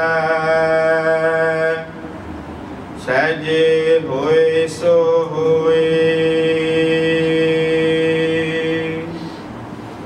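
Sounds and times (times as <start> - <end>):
man chanting scripture: 0.0 - 1.9, 3.0 - 9.4.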